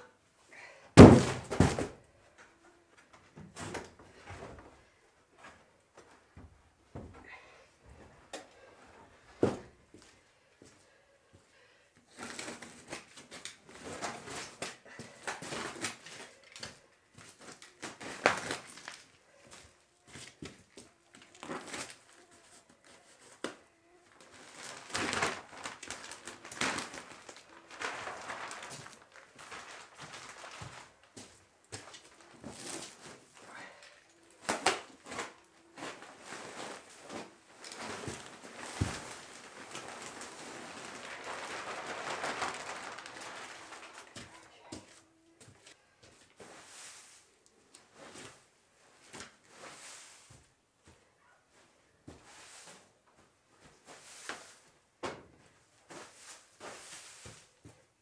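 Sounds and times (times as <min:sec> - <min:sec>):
plastic wrapping crinkling and tearing: 0:12.2 - 0:19.2, 0:20.1 - 0:33.4, 0:34.2 - 0:44.8
wood shavings rustling: 0:24.3 - 0:33.2, 0:35.0 - 0:45.0.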